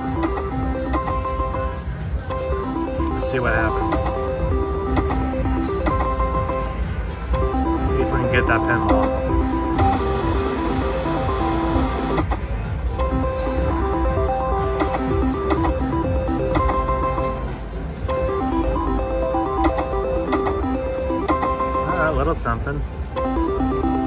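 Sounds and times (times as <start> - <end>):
low casino rumble: 0.0 - 24.0
slot machine beeping tune: 0.0 - 24.0.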